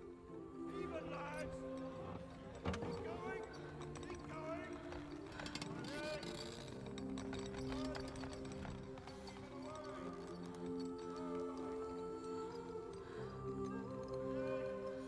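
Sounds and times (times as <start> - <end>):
indistinct background voices: 0.0 - 15.0
wooden knocks and creaks: 1.0 - 11.8.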